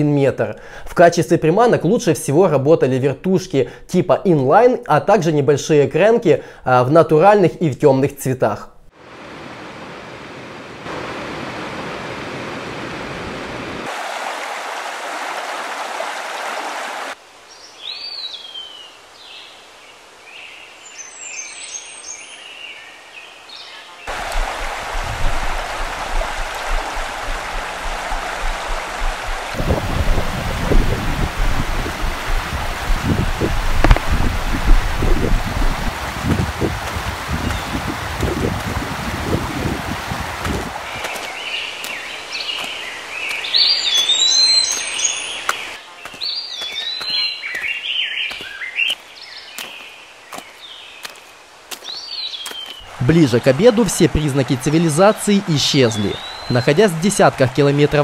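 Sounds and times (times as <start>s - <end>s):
rushing mountain stream: 8.9s - 17.6s, 24.1s - 58.0s
birds chirping: 32.7s - 58.0s
thumps on microphone: 33.8s - 34.8s.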